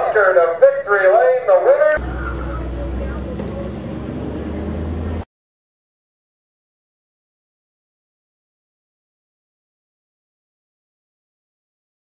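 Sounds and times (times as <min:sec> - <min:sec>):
announcer speaking: 0:00.0 - 0:04.0
race car engine idling: 0:02.0 - 0:05.2.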